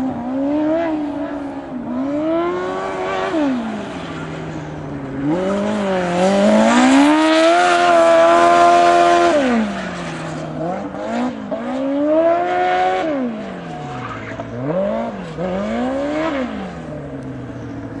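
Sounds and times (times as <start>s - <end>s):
race car engine revving: 0.0s - 18.0s.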